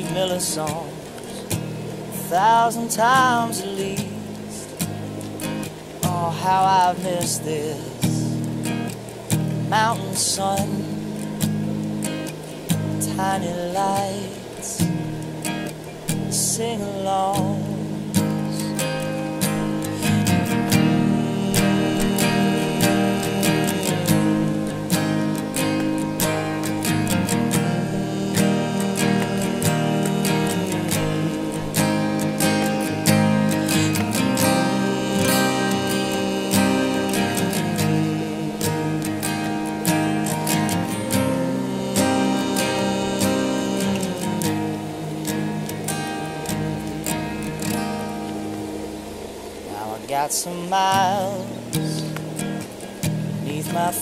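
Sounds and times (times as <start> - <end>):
acoustic guitar strumming: 0.0 - 54.0
person humming a melody: 16.5 - 45.9.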